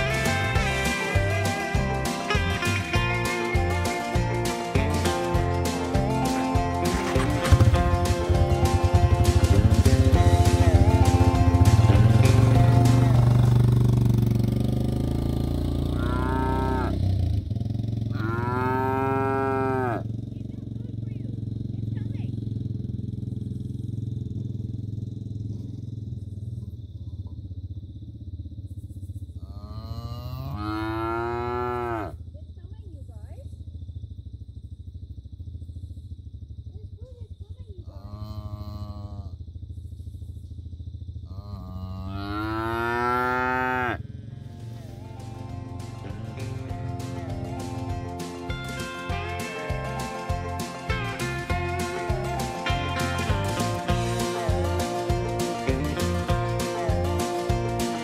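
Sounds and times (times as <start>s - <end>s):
calves mooing: 16.0s - 17.0s, 18.1s - 20.0s, 29.4s - 32.2s, 37.9s - 39.3s, 41.3s - 44.0s.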